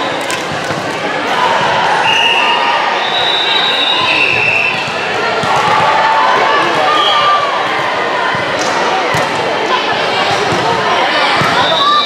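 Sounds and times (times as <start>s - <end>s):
balls bouncing and hit: 0.1s - 2.0s, 3.9s - 11.8s
overlapping voices: 2.8s - 12.0s.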